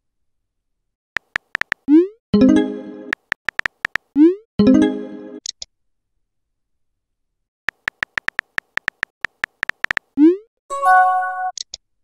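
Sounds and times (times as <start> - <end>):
phone keyboard typing blips: 1.2 - 2.0, 3.1 - 4.3, 7.7 - 10.4.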